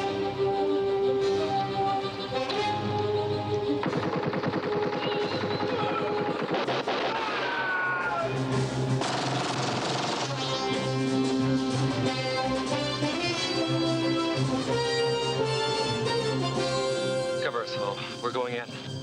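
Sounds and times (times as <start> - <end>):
film score music: 0.0 - 19.0
automatic weapon fire: 3.8 - 7.7, 9.0 - 10.9.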